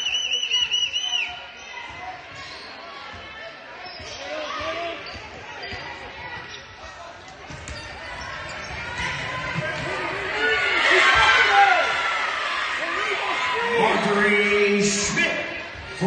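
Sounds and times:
voices echoing in gym: 0:00.0 - 0:16.0
sneakers squeaking: 0:00.3 - 0:11.2.

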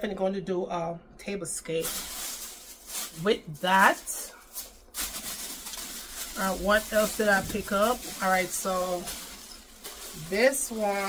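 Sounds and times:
shopping bag rustling: 0:01.8 - 0:11.0.

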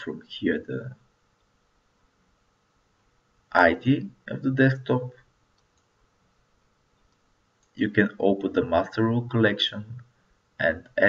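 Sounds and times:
faint computer mouse clicks: 0:05.5 - 0:06.0, 0:07.0 - 0:07.8.

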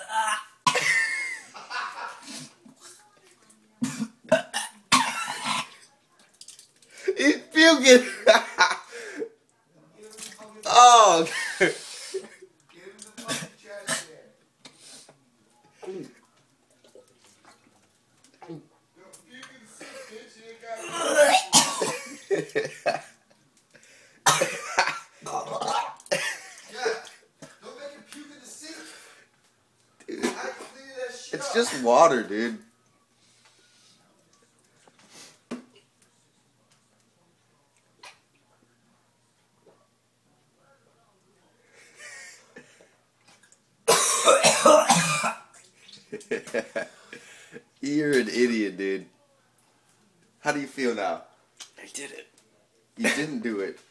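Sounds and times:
man coughing and hacking: 0:00.0 - 0:01.3, 0:03.8 - 0:05.7, 0:13.2 - 0:14.2, 0:20.8 - 0:23.0, 0:24.2 - 0:27.6, 0:43.9 - 0:45.5.

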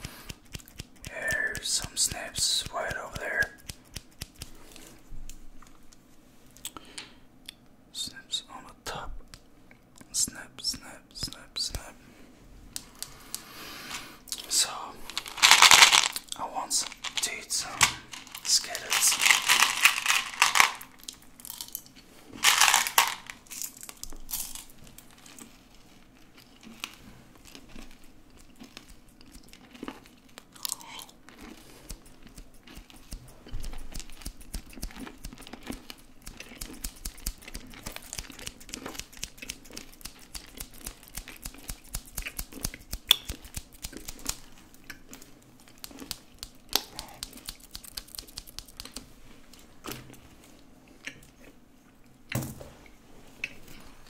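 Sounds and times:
crinkly rustles: 0:15.0 - 0:21.1, 0:22.4 - 0:24.0.

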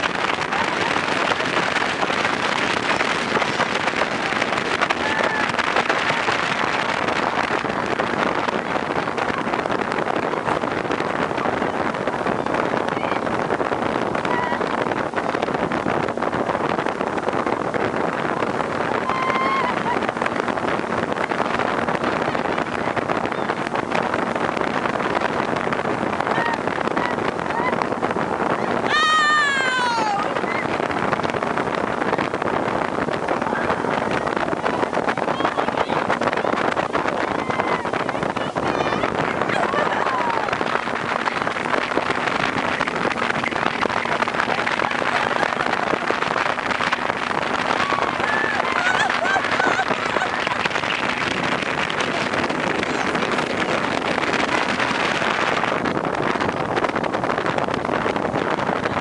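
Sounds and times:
boat engine running: 0:00.0 - 0:59.0
rushing water: 0:00.0 - 0:59.0
wind on microphone: 0:00.0 - 0:59.0
high falling whoop: 0:18.9 - 0:20.0, 0:28.8 - 0:30.7, 0:47.7 - 0:49.9.

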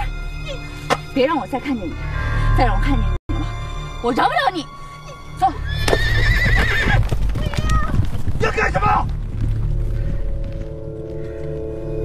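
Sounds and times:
horse whinnying: 0:05.6 - 0:07.1
hoofbeats: 0:05.6 - 0:12.0.

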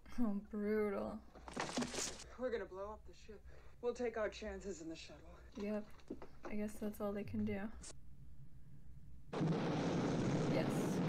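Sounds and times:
flamethrower roaring blast: 0:09.4 - 0:11.0.

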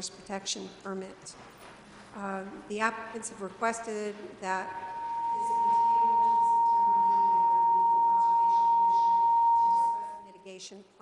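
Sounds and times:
high-pitched feedback ringing: 0:04.6 - 0:10.4.

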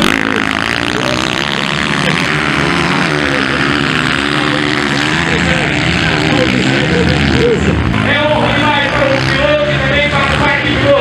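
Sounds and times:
motorcycle engines revving: 0:00.0 - 0:11.0.

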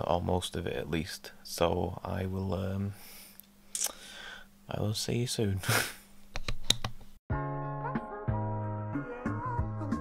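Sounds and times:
background music with held notes: 0:07.3 - 0:10.0.

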